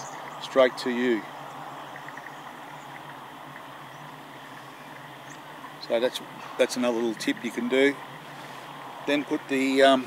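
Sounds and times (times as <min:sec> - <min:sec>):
faint insect chirping: 0:00.0 - 0:06.1.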